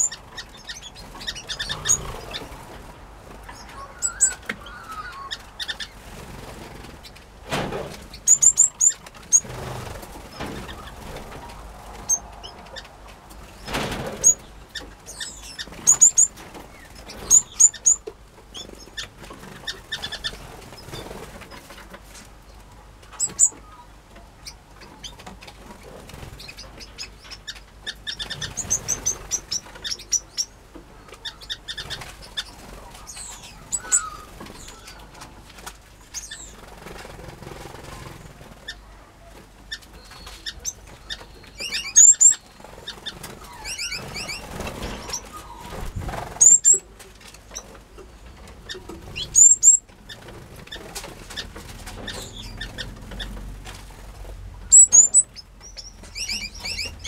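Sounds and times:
loud high rapid bird calls: 0:00.0 - 0:02.8, 0:08.2 - 0:11.2, 0:31.2 - 0:35.1, 0:39.7 - 0:46.8, 0:48.7 - 0:53.4, 0:54.7 - 0:57.0
small birds chirping: 0:00.0 - 0:07.2, 0:08.0 - 0:21.9, 0:22.5 - 0:57.0
wings fluttering: 0:00.1 - 0:22.3, 0:31.1 - 0:38.8, 0:39.4 - 0:57.0.

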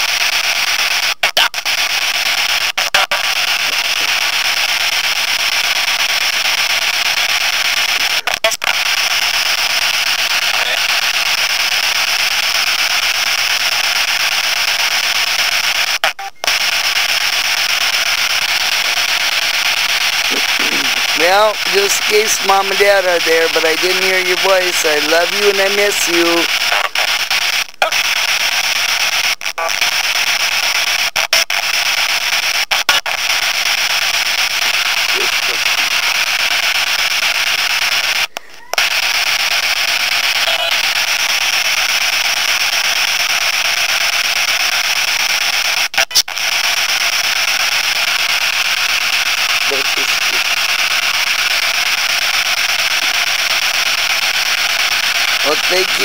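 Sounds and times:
radio static hiss: 0:00.0 - 0:56.0.

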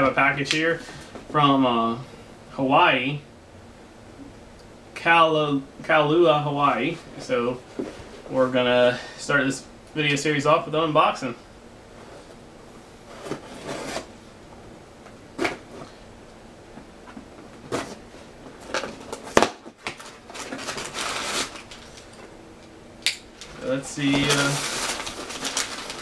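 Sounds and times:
cardboard scraping and rustling: 0:13.0 - 0:14.2, 0:17.0 - 0:22.0, 0:23.4 - 0:26.0.

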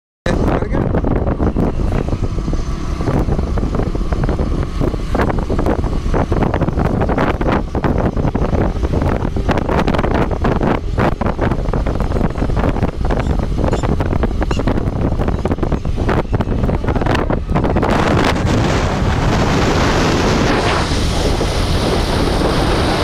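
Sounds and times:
road vehicle rumble: 0:00.3 - 0:23.0
wind buffeting microphone: 0:00.3 - 0:23.0.

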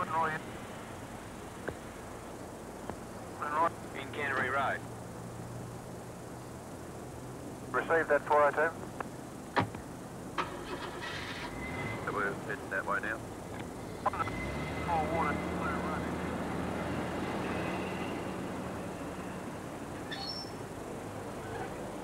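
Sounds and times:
car engine starting and idling: 0:10.3 - 0:20.0.

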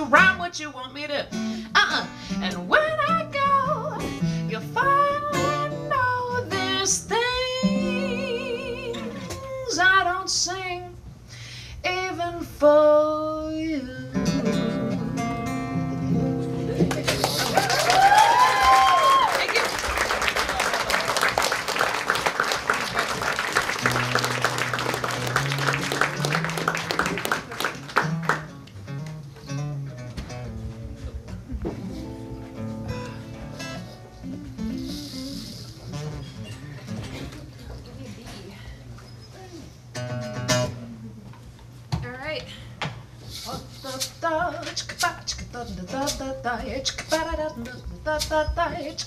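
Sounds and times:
murmuring crowd: 0:16.2 - 0:18.1
audience applauding and cheering: 0:16.9 - 0:28.7
high whoops: 0:17.3 - 0:19.8.

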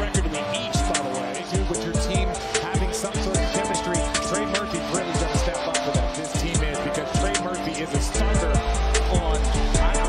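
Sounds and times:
music with heavy beat: 0:00.0 - 0:10.0.

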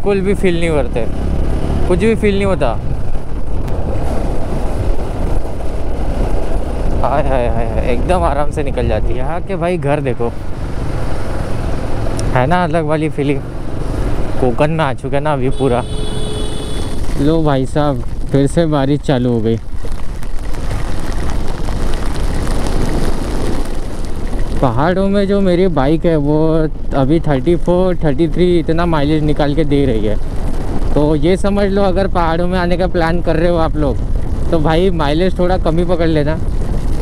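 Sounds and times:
wind rush on microphone: 0:00.7 - 0:12.6, 0:15.8 - 0:37.0
wind rushing on microphone: 0:00.7 - 0:12.7
raindrops spattering on camera: 0:16.8 - 0:37.0.

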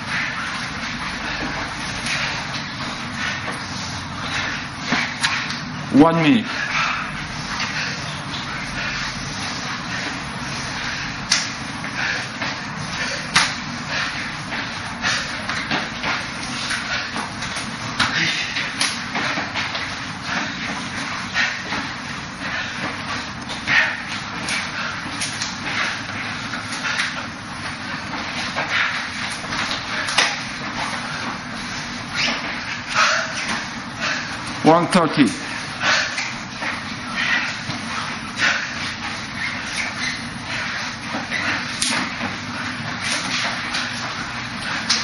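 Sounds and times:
slaps of forearms and hands: 0:11.2 - 0:11.6, 0:13.2 - 0:13.7, 0:15.4 - 0:20.7, 0:28.1 - 0:31.0, 0:41.1 - 0:42.4.

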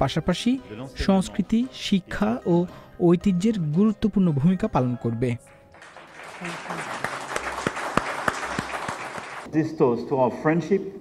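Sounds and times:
audience applause: 0:05.7 - 0:09.5
single loud claps: 0:05.8 - 0:09.5.

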